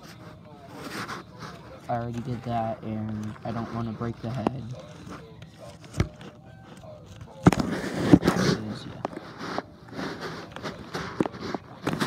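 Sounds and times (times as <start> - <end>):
faint handling noise: 0.0 - 12.0.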